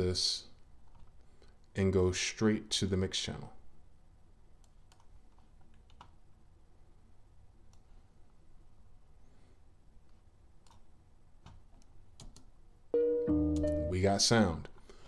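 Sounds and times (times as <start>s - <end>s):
low room hum: 0.0s - 15.0s
computer mouse clicks: 4.6s - 6.2s, 10.1s - 12.5s.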